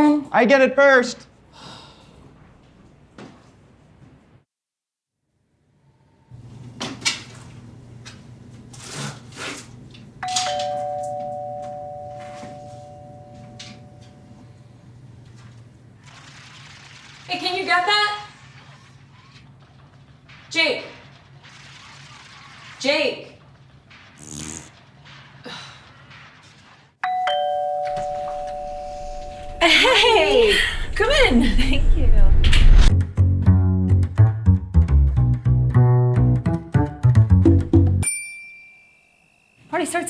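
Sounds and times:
two-note doorbell chime: 10.2s - 14.4s, 27.0s - 29.6s
low steady hum: 27.3s - 32.9s.

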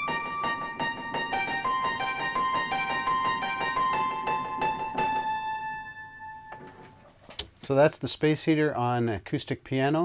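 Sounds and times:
distorted piano notes: 0.0s - 7.0s.

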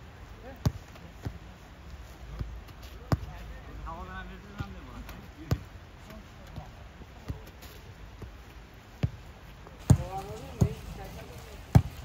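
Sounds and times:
boot kicking football: 4.6s - 12.0s.

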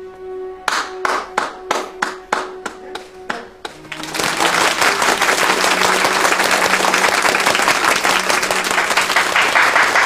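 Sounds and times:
soft background music: 0.0s - 10.0s
hands clapping: 0.6s - 10.0s.

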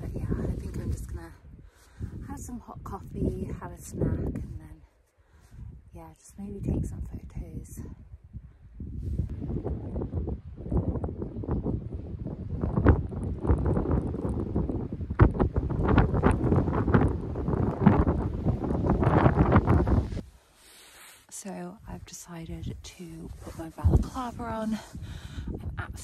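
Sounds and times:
gusty wind buffeting microphone: 0.0s - 20.3s, 21.8s - 26.0s.

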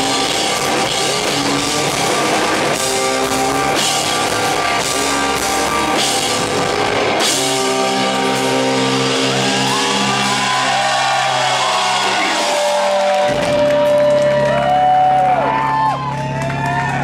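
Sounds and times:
guitar feedback tone: 0.0s - 16.4s
electric guitars droning: 0.0s - 17.0s
audience shouting and whooping: 8.6s - 17.0s.

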